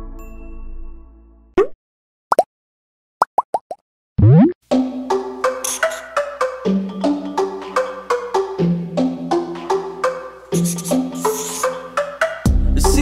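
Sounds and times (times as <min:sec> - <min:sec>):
rising blips: 0:04.2 - 0:04.6
upbeat music with percussive beat: 0:04.8 - 0:13.0.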